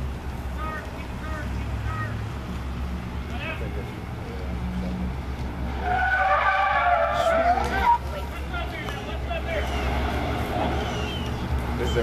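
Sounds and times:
car tyres squealing on pavement: 0:05.6 - 0:12.0.

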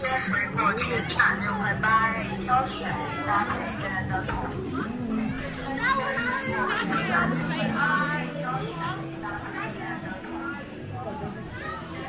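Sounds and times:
background music: 0:00.0 - 0:12.0
children chattering and calling out: 0:00.0 - 0:12.0.

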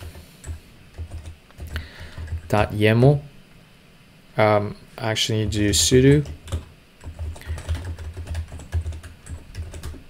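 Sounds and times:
computer keyboard keystrokes: 0:00.0 - 0:02.5, 0:06.1 - 0:10.0.

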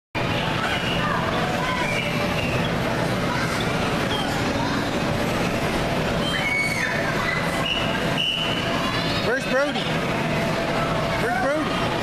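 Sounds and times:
children shouting and chattering: 0:00.2 - 0:12.0
electric blowers humming: 0:00.2 - 0:12.0.

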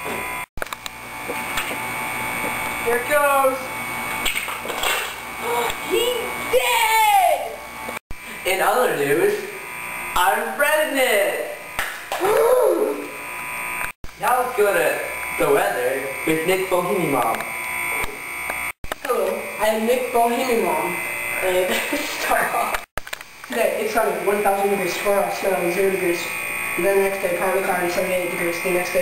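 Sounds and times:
boy's wordless vocal cry: 0:12.2 - 0:13.0.

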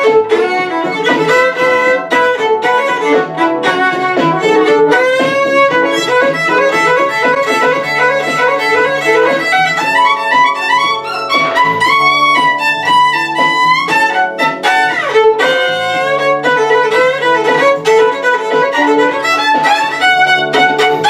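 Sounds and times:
violin playing blues solo: 0:00.0 - 0:21.0
repeating bass line: 0:00.2 - 0:21.0.

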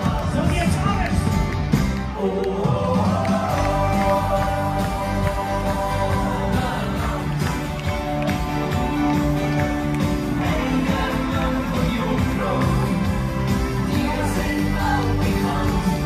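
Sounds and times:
person singing: 0:02.1 - 0:08.3, 0:10.2 - 0:16.0.

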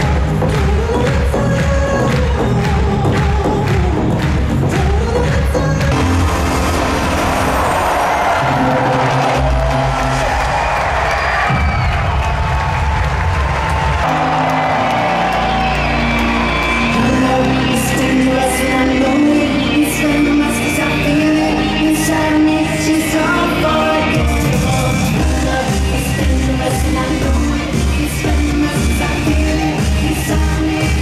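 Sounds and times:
live pop music over sound system: 0:00.0 - 0:31.0
crowd cheering: 0:05.9 - 0:31.0.

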